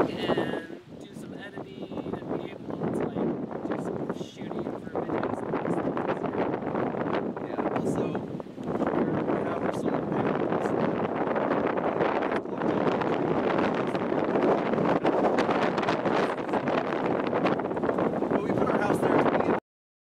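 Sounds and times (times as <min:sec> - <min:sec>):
gusty wind on microphone: 0:00.0 - 0:19.6.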